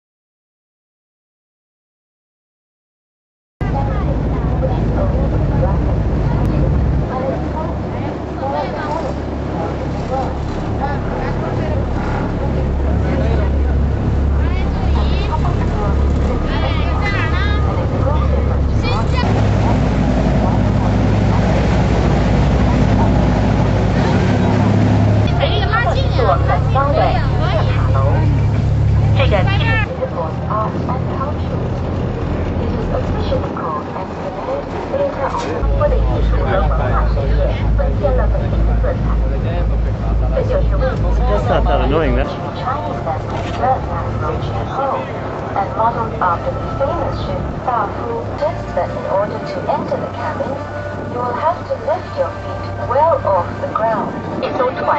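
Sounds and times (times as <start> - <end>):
low engine drone: 3.6 - 54.9
people talking: 3.6 - 54.9.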